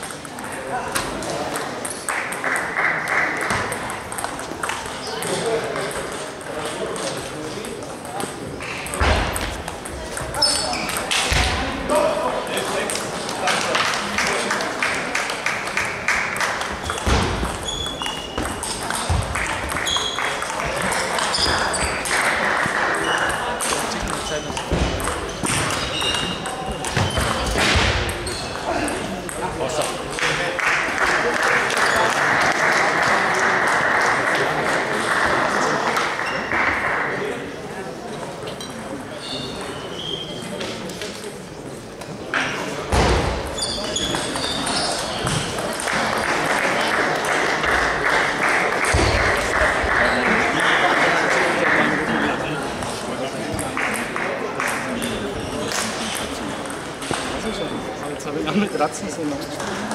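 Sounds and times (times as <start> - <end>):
table tennis balls clicking: 0.0 - 11.4, 12.6 - 31.0, 53.5 - 57.6
chatter: 0.0 - 59.9
people clapping: 2.0 - 4.8, 12.7 - 17.0, 18.6 - 24.4, 30.1 - 37.4, 45.5 - 52.6, 53.6 - 56.0.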